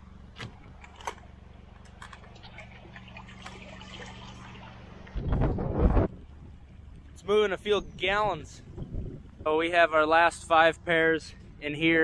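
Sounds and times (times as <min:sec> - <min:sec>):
low steady hum: 0:00.0 - 0:12.0
water splashing and dripping: 0:00.4 - 0:05.4.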